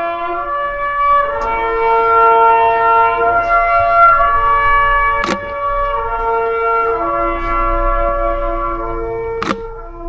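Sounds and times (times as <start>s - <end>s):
slow wind instrument melody: 0.0s - 10.0s
sharp click: 5.2s - 5.5s, 9.4s - 9.7s.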